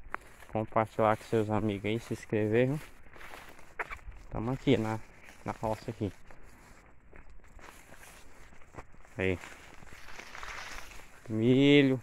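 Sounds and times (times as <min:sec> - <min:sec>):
footsteps on soil: 0:00.0 - 0:12.0.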